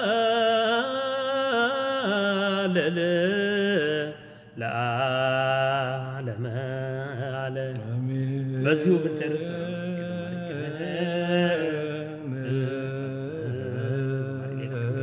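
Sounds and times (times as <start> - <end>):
man singing chant: 0.0 - 15.0
man breathing: 4.2 - 4.6.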